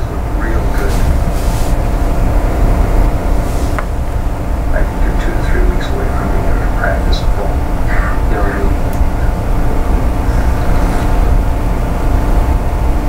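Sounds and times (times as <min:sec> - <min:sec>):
low rumble: 0:00.0 - 0:13.0.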